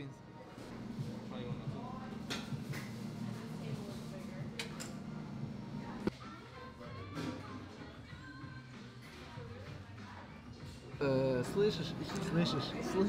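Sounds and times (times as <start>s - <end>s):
background music: 6.1s - 13.0s.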